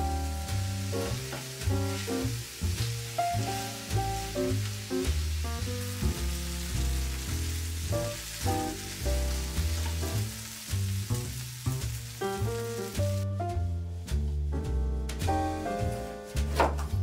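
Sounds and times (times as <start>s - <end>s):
onions sizzling in a pan: 0.0s - 16.6s
background music with regular beat: 11.9s - 17.0s.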